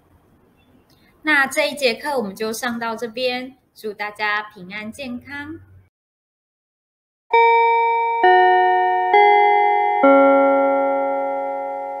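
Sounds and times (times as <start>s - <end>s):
bell-like mallet chime: 7.3s - 12.0s.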